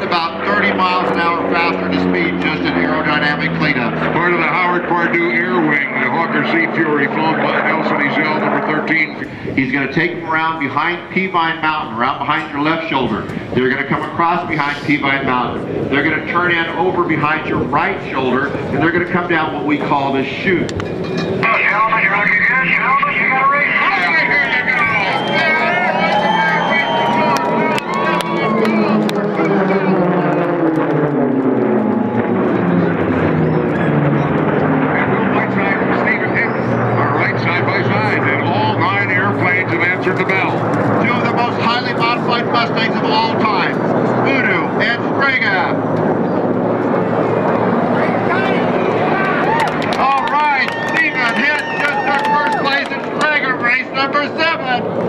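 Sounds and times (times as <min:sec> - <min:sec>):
low drone of engines: 0:00.0 - 0:55.0
propeller planes flying past: 0:00.0 - 0:55.0.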